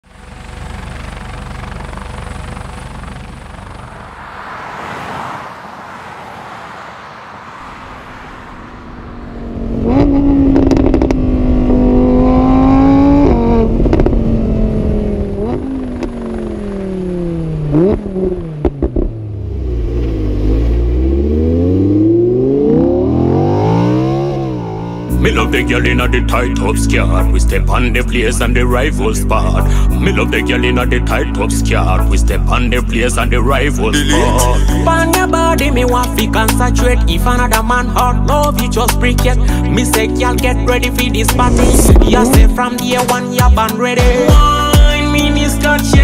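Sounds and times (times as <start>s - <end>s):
sports car engine accelerating: 0.0s - 46.0s
exhaust pops: 9.8s - 11.3s, 13.2s - 14.3s, 17.8s - 19.2s, 41.3s - 42.7s.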